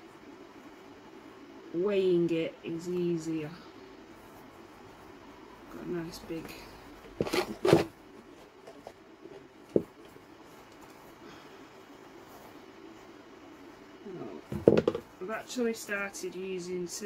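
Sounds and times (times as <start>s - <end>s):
objects knocking on a tabletop: 14.5s - 15.1s.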